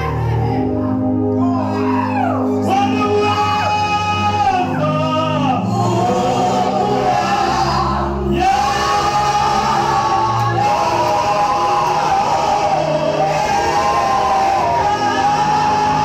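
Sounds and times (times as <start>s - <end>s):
congregation singing: 0.0s - 16.0s
low instrumental accompaniment: 0.0s - 16.0s.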